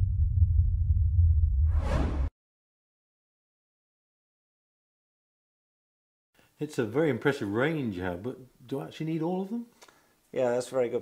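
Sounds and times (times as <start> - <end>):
deep steady rumble: 0.0 - 2.3
whoosh: 0.0 - 2.3.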